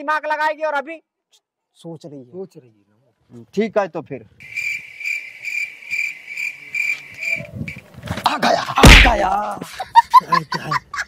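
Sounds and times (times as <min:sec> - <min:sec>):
cricket chirp sound effect: 0:04.4 - 0:07.8.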